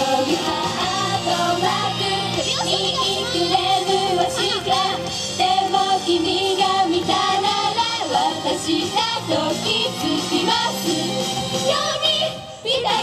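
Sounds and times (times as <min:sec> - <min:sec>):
pop song over sound system: 0:00.0 - 0:13.0
young female voices singing: 0:00.0 - 0:13.0.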